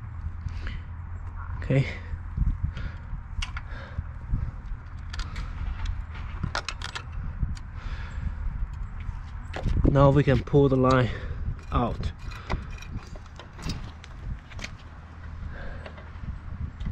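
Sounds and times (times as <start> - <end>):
steady low rumble: 0.0 - 16.9.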